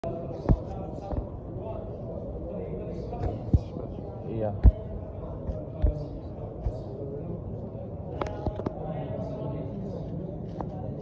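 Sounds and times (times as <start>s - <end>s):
crowd murmur in a hall: 0.0s - 11.0s
dull deep thumps: 0.5s - 1.3s, 4.6s - 4.9s.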